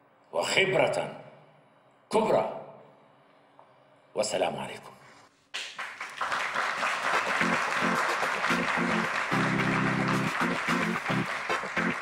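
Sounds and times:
audience applauding: 0:05.6 - 0:12.0
music of plucked notes: 0:07.4 - 0:12.0.

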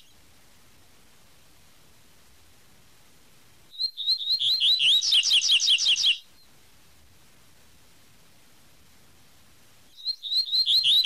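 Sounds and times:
bird singing whistled notes: 0:03.7 - 0:06.5, 0:09.9 - 0:11.0.

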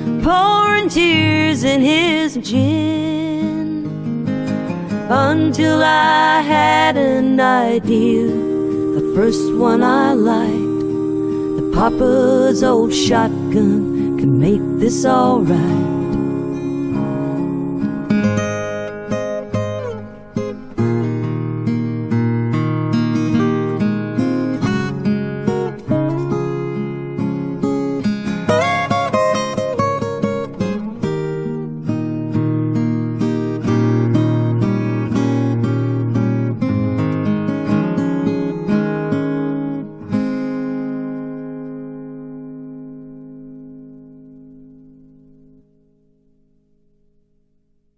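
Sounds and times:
acoustic guitar music: 0:00.0 - 0:47.9.

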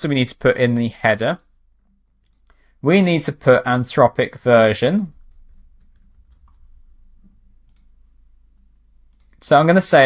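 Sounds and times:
low steady hum: 0:00.2 - 0:10.0
mouse clicks: 0:07.2 - 0:07.9, 0:09.0 - 0:09.4.

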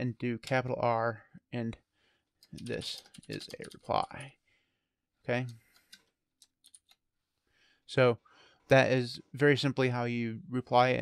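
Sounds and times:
computer keyboard keystrokes: 0:02.4 - 0:04.3, 0:05.7 - 0:07.0.

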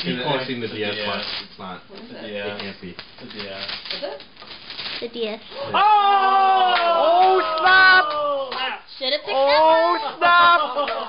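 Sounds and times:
wrapping paper crinkling and tearing: 0:00.0 - 0:05.4.

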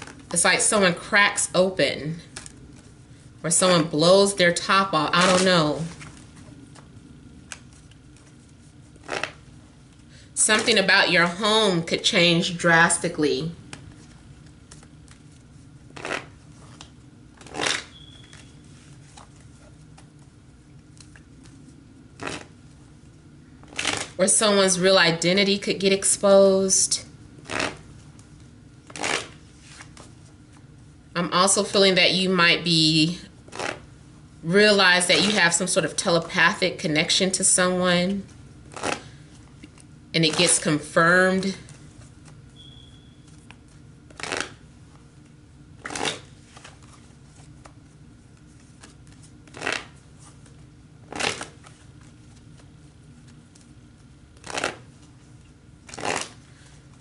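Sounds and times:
cards shuffling: 0:05.1 - 0:09.5, 0:13.7 - 0:22.5, 0:23.6 - 0:24.2, 0:27.4 - 0:30.6, 0:38.7 - 0:40.6, 0:43.2 - 0:57.0.

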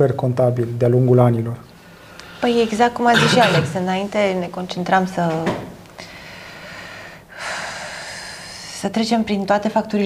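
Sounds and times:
woman breathing in: 0:01.8 - 0:02.7, 0:06.0 - 0:08.8
woman speaking: 0:02.4 - 0:05.7, 0:08.4 - 0:10.0.

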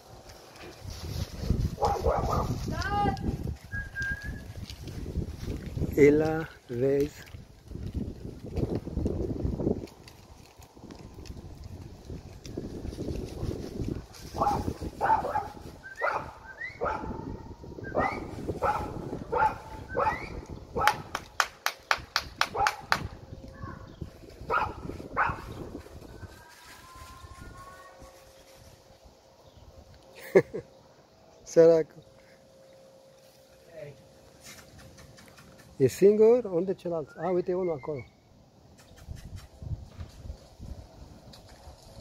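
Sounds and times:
dog barking: 0:01.8 - 0:02.6, 0:14.4 - 0:17.3, 0:18.0 - 0:21.0, 0:22.5 - 0:23.0, 0:24.5 - 0:25.5.

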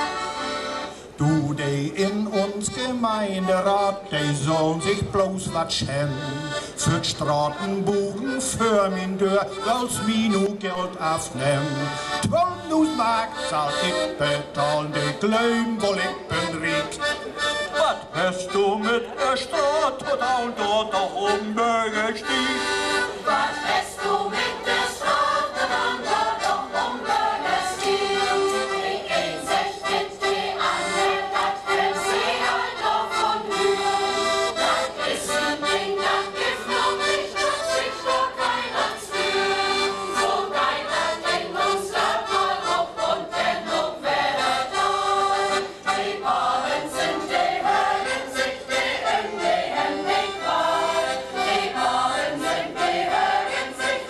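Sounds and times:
accordion: 0:00.0 - 0:54.0
steady rhythmic beat: 0:22.0 - 0:54.0
mixed choir singing: 0:22.2 - 0:54.0.

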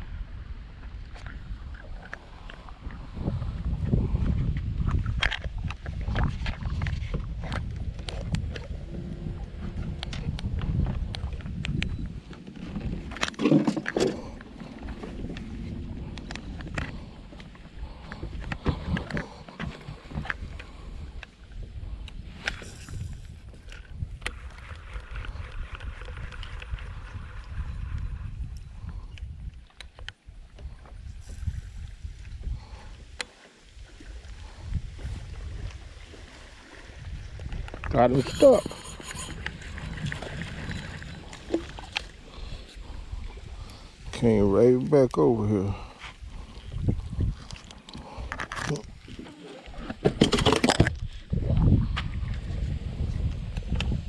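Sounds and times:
water lapping at boat: 0:00.0 - 0:54.0
wind rumbling on microphone: 0:00.0 - 0:54.0.

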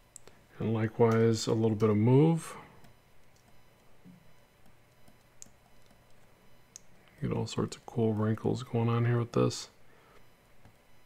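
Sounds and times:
faint steady low hum: 0:00.0 - 0:11.0.

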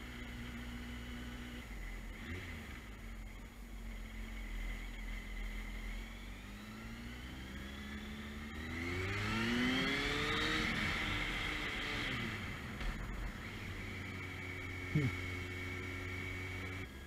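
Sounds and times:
motorcycle engine accelerating: 0:00.0 - 0:17.0
wind and road noise: 0:00.0 - 0:17.0.

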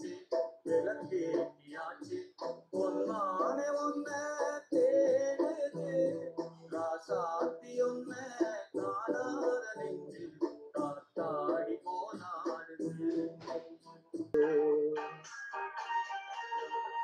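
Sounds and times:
man singing: 0:00.0 - 0:13.3
instrumental backing track: 0:00.0 - 0:17.0.

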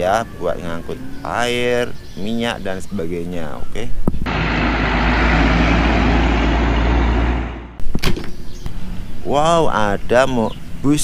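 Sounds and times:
truck engine rumble: 0:04.2 - 0:07.8
road and tyre noise: 0:04.2 - 0:09.3.

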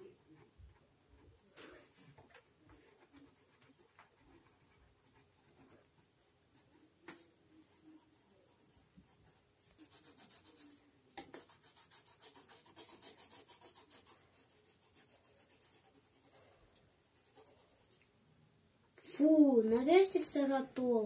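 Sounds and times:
pencil scratching on paper: 0:00.0 - 0:18.1.

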